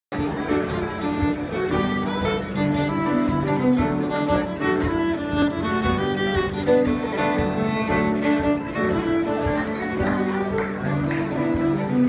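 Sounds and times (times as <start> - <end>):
fiddle playing dance tune: 0.1 - 12.0.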